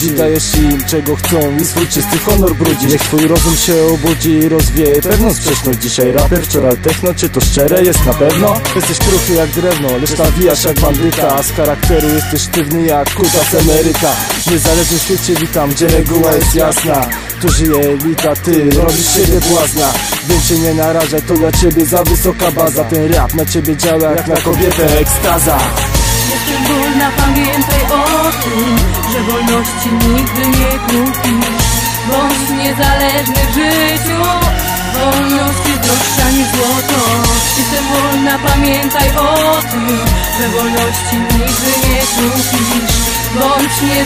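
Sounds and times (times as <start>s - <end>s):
rapping over a hip-hop beat: 0.0s - 44.0s
steady drum hits: 24.5s - 26.5s.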